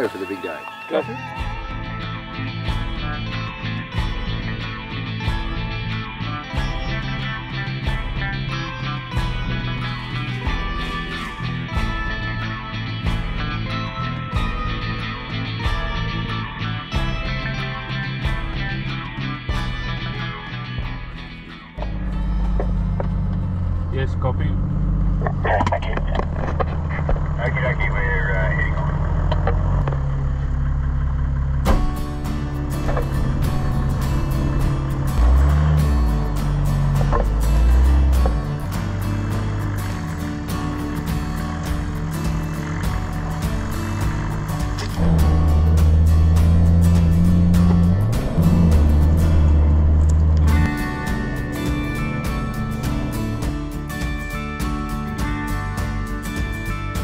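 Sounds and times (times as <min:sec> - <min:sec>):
music with quick beat: 0:06.5 - 0:16.3, 0:16.9 - 0:17.6, 0:31.7 - 0:57.0
vehicle cabin rumble: 0:21.8 - 0:54.6.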